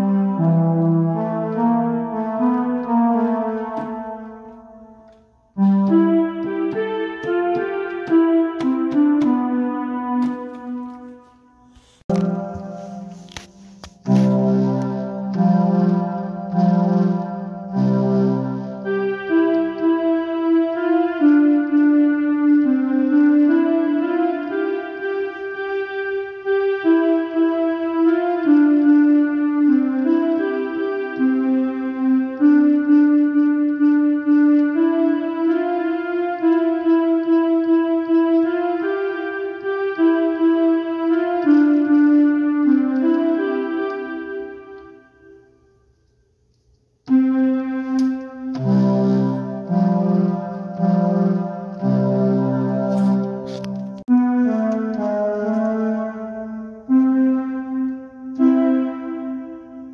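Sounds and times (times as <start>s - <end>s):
electronic keyboard melody: 0.0s - 59.9s.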